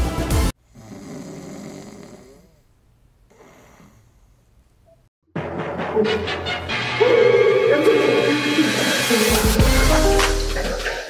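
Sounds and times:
person snoring: 0:00.6 - 0:02.7, 0:03.3 - 0:04.5
loud background music: 0:05.4 - 0:11.0.

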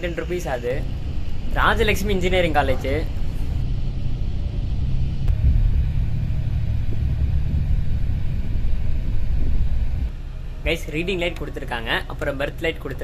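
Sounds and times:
coach engine and road noise: 0:00.0 - 0:13.0.

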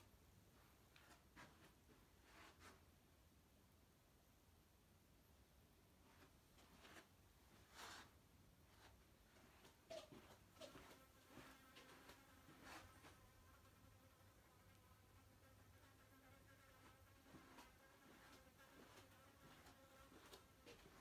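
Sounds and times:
faint buzzing hum: 0:08.6 - 0:21.0.

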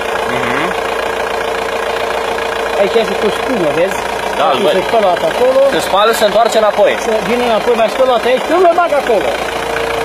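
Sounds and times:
diesel car engine idling: 0:00.0 - 0:10.0.

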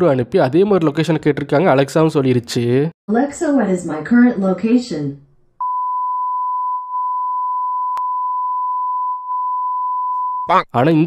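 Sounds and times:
censor bleep tone: 0:05.6 - 0:10.7.

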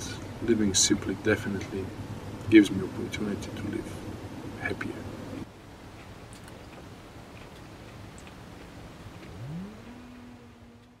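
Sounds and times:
motor rising in pitch: 0:09.2 - 0:11.0.

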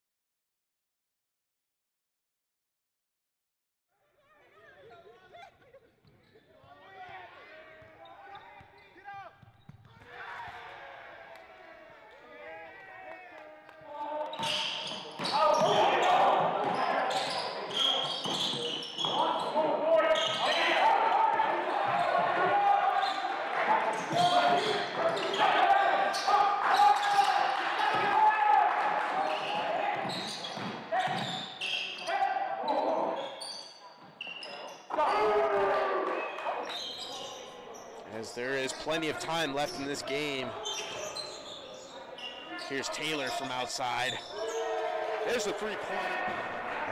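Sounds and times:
voices of players and spectators: 0:03.9 - 0:46.9.

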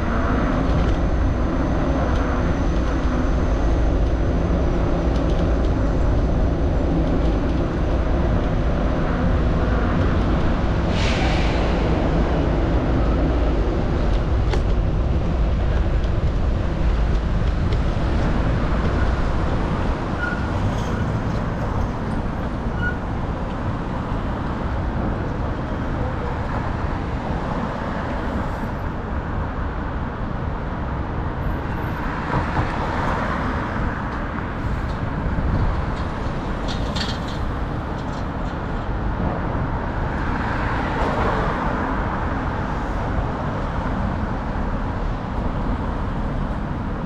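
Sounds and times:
city traffic rumble: 0:00.0 - 0:47.0.

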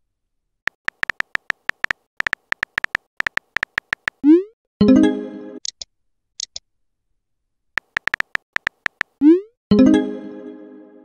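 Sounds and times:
smartphone keyboard tap clicks: 0:00.7 - 0:04.2, 0:07.8 - 0:09.2.

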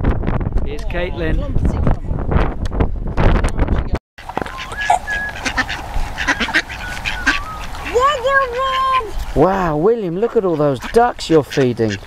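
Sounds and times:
wind rumbling on microphone: 0:00.0 - 0:09.8
ducks quacking: 0:04.2 - 0:12.0.

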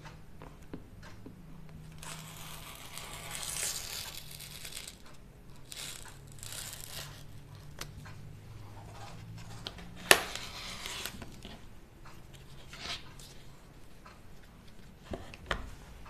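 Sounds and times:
rotary cutter cutting fabric: 0:01.9 - 0:05.0.

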